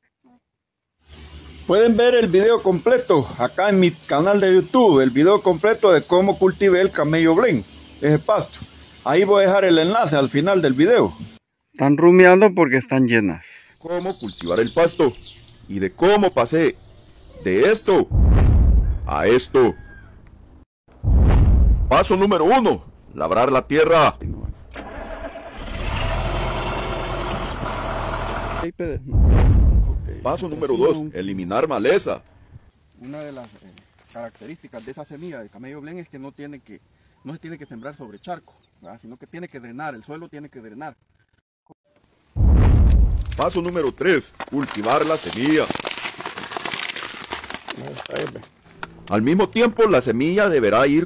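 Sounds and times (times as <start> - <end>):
tractor engine running: 24.7 - 28.7
plastic bags crinkling: 43.3 - 48.7.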